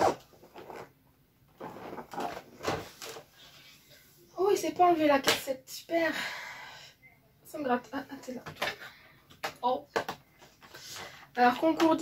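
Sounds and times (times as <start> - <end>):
cardboard rustling and scraping: 0.0 - 0.9, 1.5 - 3.9.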